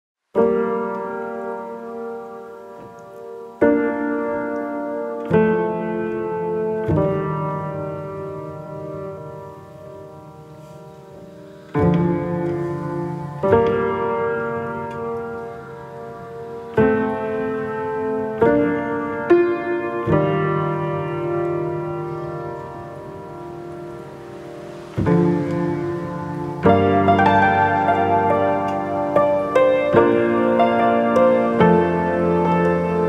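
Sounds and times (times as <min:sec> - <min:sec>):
solo piano slow chords: 0:00.2 - 0:33.0.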